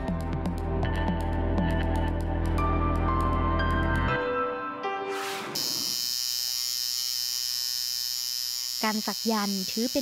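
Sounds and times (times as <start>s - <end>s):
music: 0.0s - 5.6s
tattoo machine buzzing: 5.6s - 10.0s.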